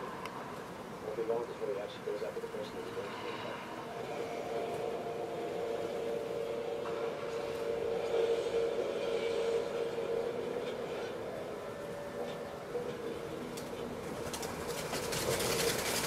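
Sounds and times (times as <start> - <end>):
steady droning hum: 0.0 - 16.0.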